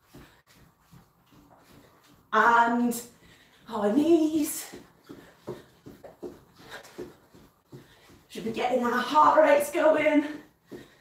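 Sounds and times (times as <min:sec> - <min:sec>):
jogging footfalls on a rug: 0:00.0 - 0:11.0.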